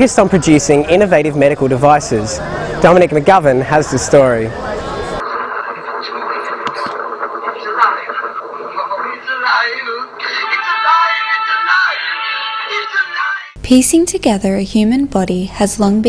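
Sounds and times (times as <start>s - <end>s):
muffled voices: 0.0s - 13.6s
muffled film music: 5.2s - 13.4s.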